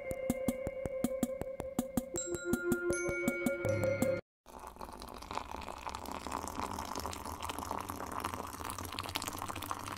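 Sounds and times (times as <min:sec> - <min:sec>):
liquid trickling: 0:04.5 - 0:09.9.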